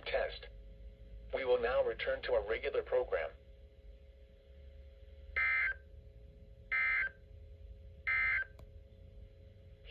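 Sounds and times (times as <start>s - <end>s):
faint steady hum: 0.0s - 9.9s.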